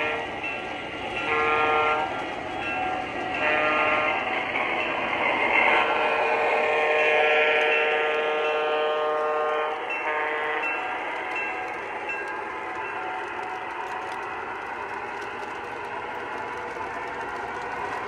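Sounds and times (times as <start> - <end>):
model train horn blasts: 0.0 - 0.3, 1.2 - 2.2, 3.3 - 4.2, 5.9 - 10.9
model train running: 0.0 - 18.0.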